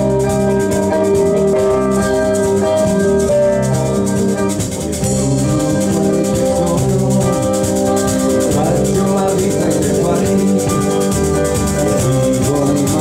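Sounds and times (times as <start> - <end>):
bass guitar: 0.0 - 13.0
drum kit: 0.0 - 13.0
electric guitar: 0.0 - 13.0
keyboard chords: 0.0 - 13.0
shaking percussion: 0.0 - 13.0.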